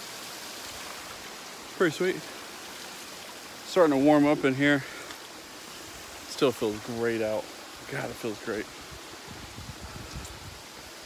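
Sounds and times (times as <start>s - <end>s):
water rushing from waterfall: 0.0s - 11.0s.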